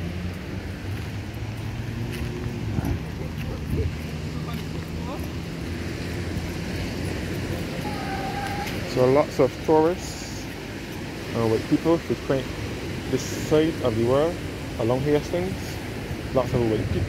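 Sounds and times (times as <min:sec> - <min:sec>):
traffic engine hum: 0:00.0 - 0:17.0
wind on microphone: 0:00.7 - 0:09.0, 0:15.6 - 0:17.0
faint voices of passersby: 0:02.2 - 0:12.5.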